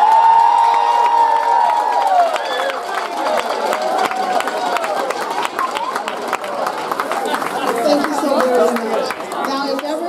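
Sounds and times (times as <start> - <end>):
audience clapping and cheering: 0.0 - 10.0
sharp hand claps: 0.0 - 10.0.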